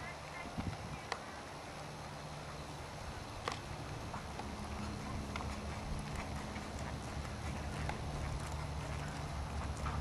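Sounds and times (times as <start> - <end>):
horse hoofbeats: 3.4 - 10.0.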